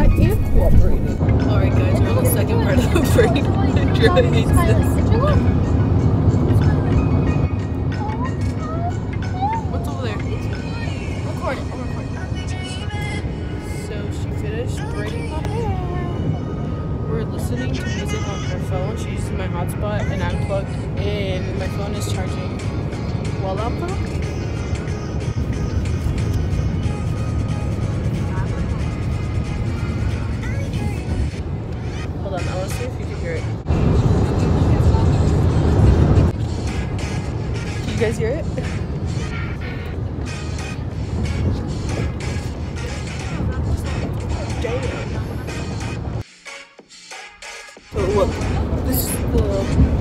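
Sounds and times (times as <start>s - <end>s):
crowd voices: 0.0s - 22.5s, 27.2s - 46.2s, 47.9s - 50.0s.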